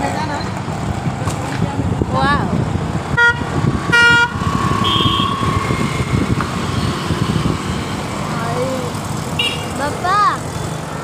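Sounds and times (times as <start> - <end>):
street traffic rumble: 0.0 - 11.0
vehicle horn toot: 3.2 - 5.5, 9.4 - 9.7.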